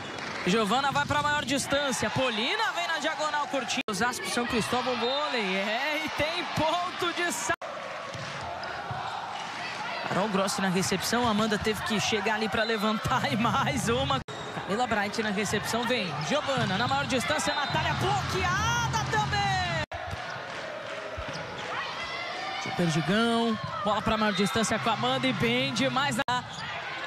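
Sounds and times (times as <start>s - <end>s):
crowd noise in sports hall: 0.0s - 27.0s
murmur of spectators: 0.0s - 27.0s.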